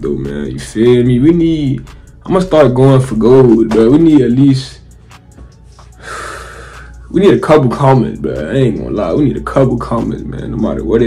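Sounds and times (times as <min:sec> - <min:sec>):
man breathing in through mouth: 0:05.0 - 0:07.1.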